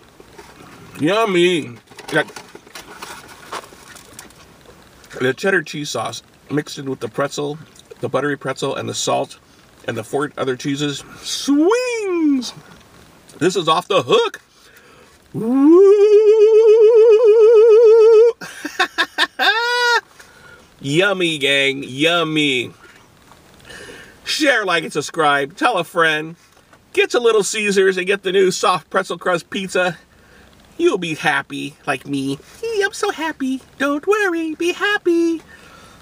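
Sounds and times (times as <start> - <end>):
quiet chewing: 2.7 - 5.2
man whooping: 11.4 - 12.6, 15.3 - 18.4, 19.3 - 20.1
vocal ooh: 15.3 - 18.4, 19.4 - 20.1.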